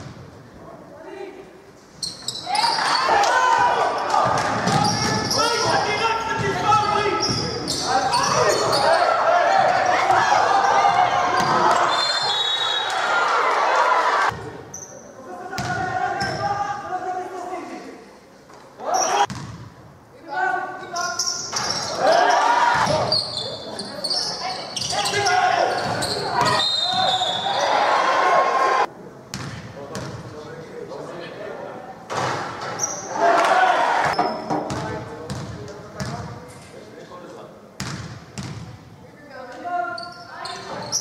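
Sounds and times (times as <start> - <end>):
echoing shouts: 2.4 - 14.4, 15.4 - 17.6, 18.8 - 19.3, 21.8 - 23.2, 24.4 - 28.9, 33.0 - 34.2.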